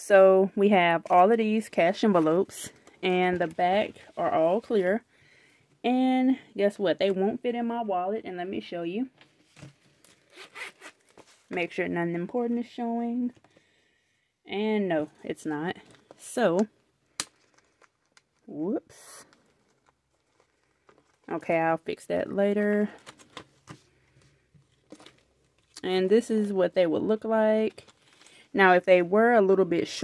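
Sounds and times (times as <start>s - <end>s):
wallet zipper rasping open: 10.2s - 11.2s.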